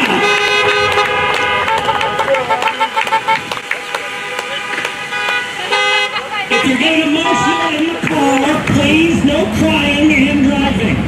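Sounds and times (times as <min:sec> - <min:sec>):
car horns honking: 0:00.0 - 0:10.2
voices shouting and cheering: 0:00.0 - 0:11.0.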